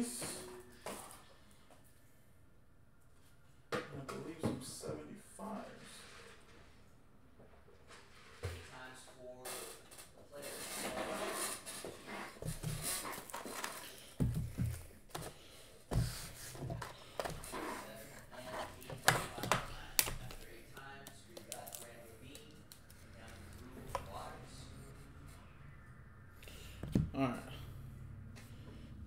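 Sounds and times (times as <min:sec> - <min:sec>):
trading cards rustling: 0:16.6 - 0:24.2.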